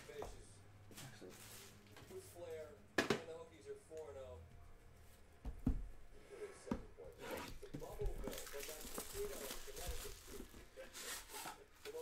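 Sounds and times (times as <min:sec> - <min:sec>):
cardboard rustling: 0:07.2 - 0:12.0
plastic wrap tearing and crinkling: 0:08.2 - 0:11.5.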